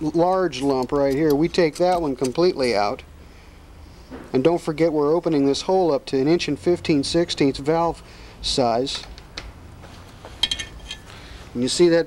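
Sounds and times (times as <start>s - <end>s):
low steady hum: 0.0s - 12.0s
metal handling clicks: 0.3s - 2.8s.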